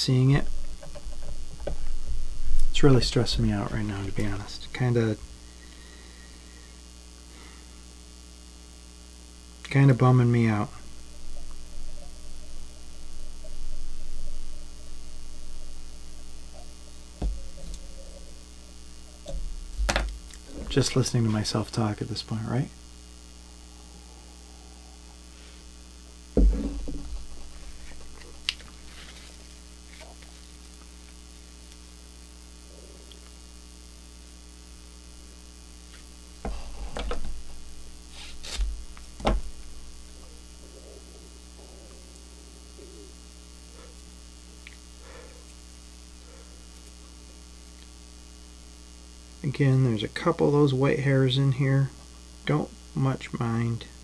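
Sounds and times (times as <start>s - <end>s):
electrical mains hum: 0.0s - 54.0s.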